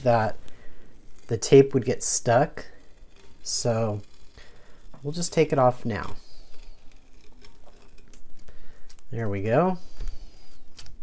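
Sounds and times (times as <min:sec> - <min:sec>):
tape peeling crackle: 0:00.0 - 0:11.0.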